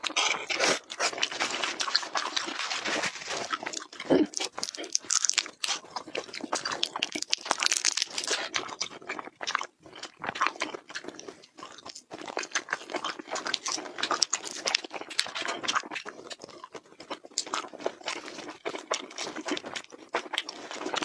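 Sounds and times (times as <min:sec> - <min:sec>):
chewing food crunching: 0:00.0 - 0:21.0.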